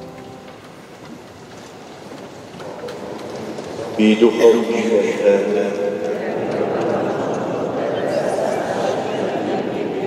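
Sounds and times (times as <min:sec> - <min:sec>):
organ chord reverberating: 0:00.0 - 0:01.8.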